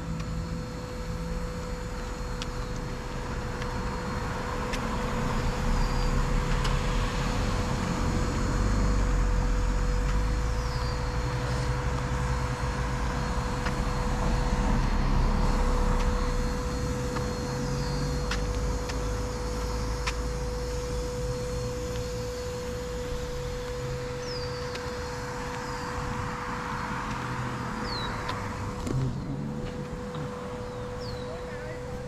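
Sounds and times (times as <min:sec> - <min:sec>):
cars passing: 0:00.0 - 0:32.0.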